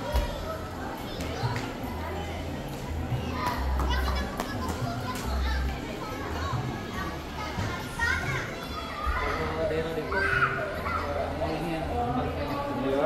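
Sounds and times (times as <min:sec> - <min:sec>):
children playing and calling out: 0:00.0 - 0:11.8
indistinct chatter: 0:00.0 - 0:13.0.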